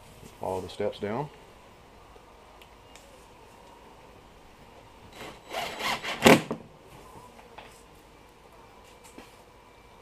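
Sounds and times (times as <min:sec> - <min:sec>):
cordless drill driving a screw: 0:05.1 - 0:06.5.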